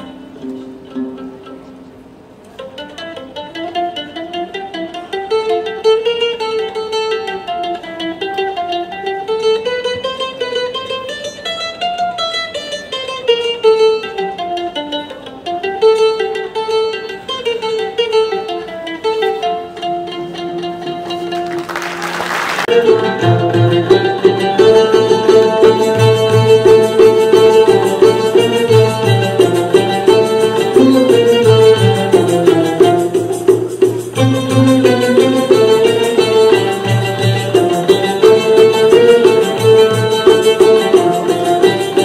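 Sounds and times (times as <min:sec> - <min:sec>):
plucked ouds and mandolins: 0:00.0 - 0:42.0.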